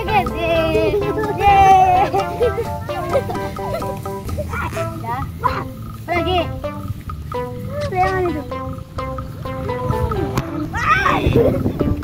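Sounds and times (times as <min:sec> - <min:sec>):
children calling out: 0:00.0 - 0:06.6, 0:09.6 - 0:11.8
background music with held notes: 0:00.0 - 0:12.0.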